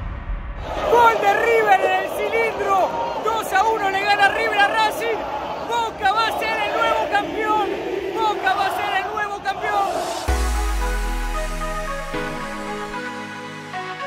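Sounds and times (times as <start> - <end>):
stadium crowd cheering: 0.6 - 10.5
man shouting excitedly: 0.8 - 10.2.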